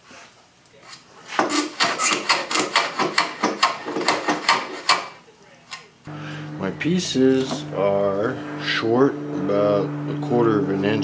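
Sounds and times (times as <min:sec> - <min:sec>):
hand tool scraping wood: 0:00.9 - 0:05.2.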